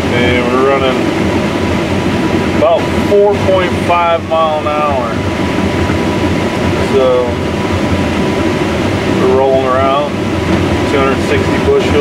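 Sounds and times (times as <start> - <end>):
combine harvester rumble: 0.0 - 12.0.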